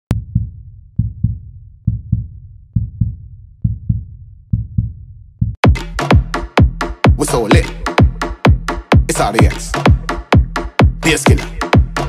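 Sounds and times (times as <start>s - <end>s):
low heartbeat thumps: 0.1s - 12.0s.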